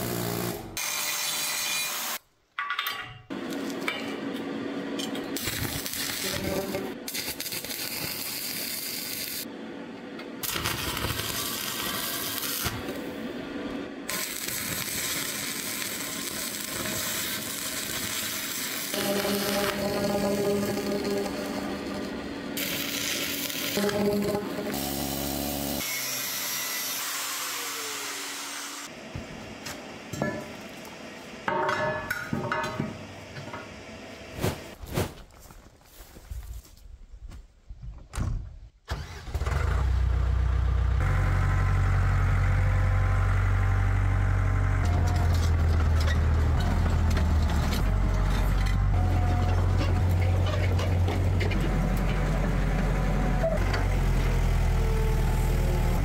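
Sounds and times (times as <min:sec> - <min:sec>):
angle grinder cutting steel: 0:14.1 - 0:28.9
excavator diesel engine drone: 0:18.9 - 0:22.8, 0:23.5 - 0:25.8, 0:39.7 - 0:56.0.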